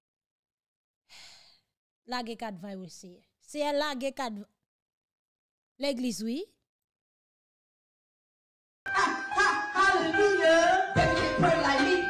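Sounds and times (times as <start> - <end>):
woman breathing: 1.1 - 1.7.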